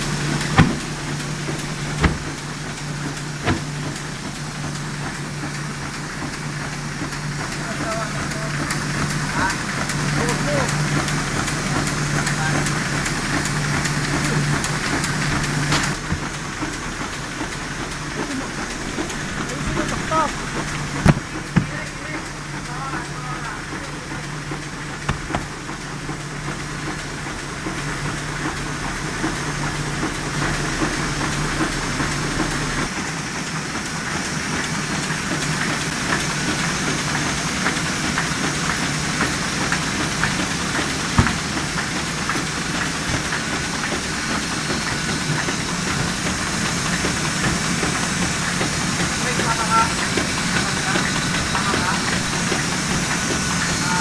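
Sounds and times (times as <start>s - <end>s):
low machine hum: 0.0s - 54.0s
printing press clattering: 0.0s - 54.0s
sharp knock: 0.6s - 0.9s, 2.0s - 2.3s.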